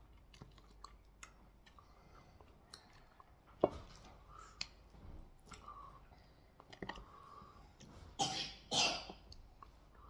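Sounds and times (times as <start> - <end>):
man coughing: 8.2 - 9.1.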